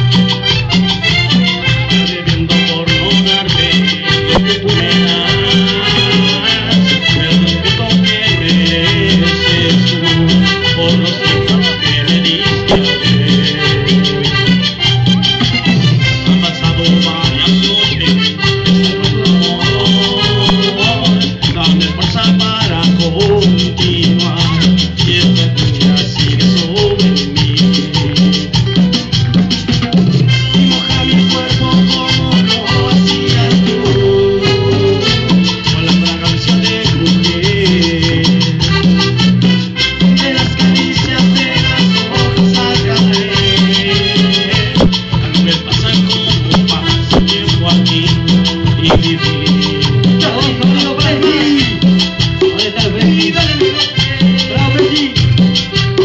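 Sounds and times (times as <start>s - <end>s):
live band playing latin dance music: 0.0s - 56.0s
shaker percussion: 0.0s - 56.0s.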